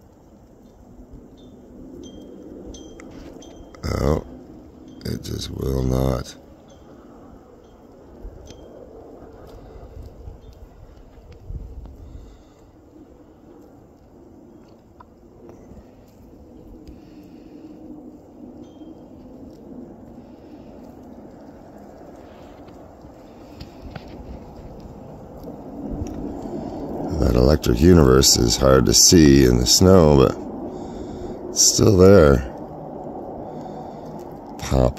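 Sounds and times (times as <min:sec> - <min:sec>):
low outdoor rumble: 0:00.0 - 0:34.9.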